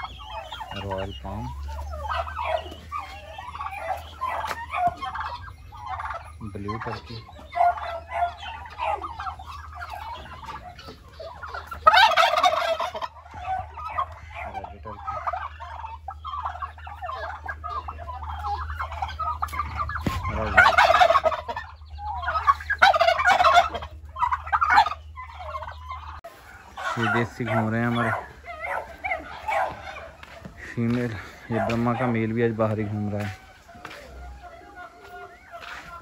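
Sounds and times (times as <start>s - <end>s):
turkeys gobbling: 0.0s - 36.0s.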